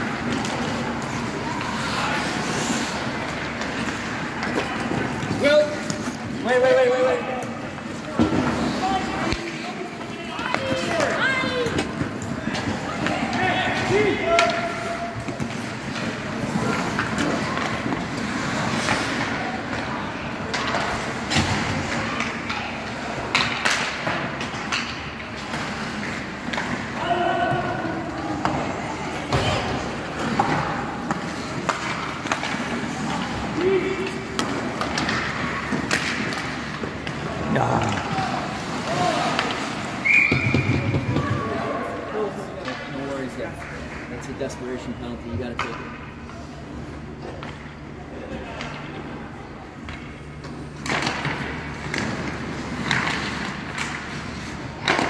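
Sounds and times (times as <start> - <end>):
skates scraping ice: 0.0 - 44.9, 50.5 - 55.0
sticks and puck clacking: 0.0 - 46.2, 49.7 - 55.0.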